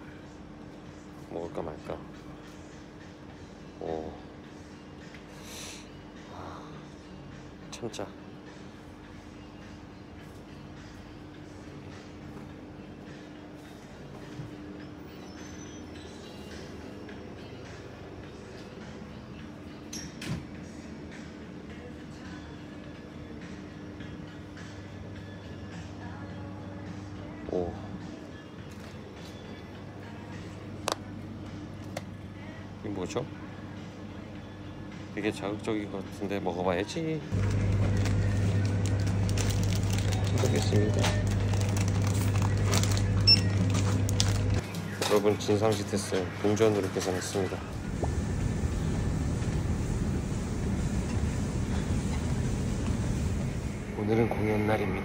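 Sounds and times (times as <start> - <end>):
refrigerator hum: 6.0 - 55.0
low electrical hum: 47.3 - 55.0.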